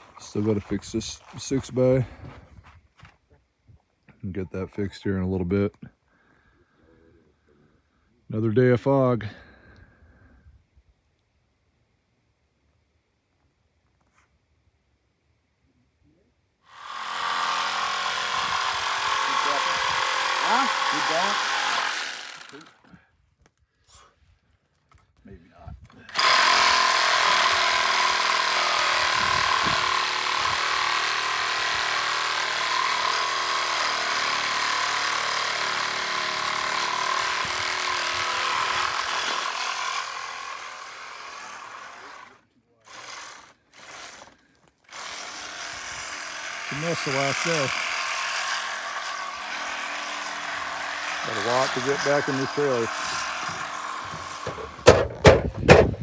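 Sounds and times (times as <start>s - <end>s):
power tool cutting metal: 16.7s - 22.8s, 26.1s - 55.8s.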